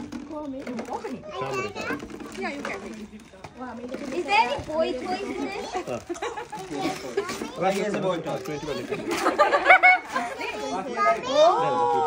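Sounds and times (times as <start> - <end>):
adults and children talking: 0.0 - 12.0.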